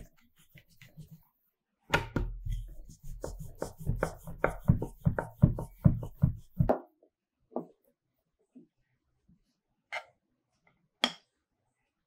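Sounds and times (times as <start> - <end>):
rolling pin rolling over dough: 0.0 - 1.4, 2.1 - 6.8.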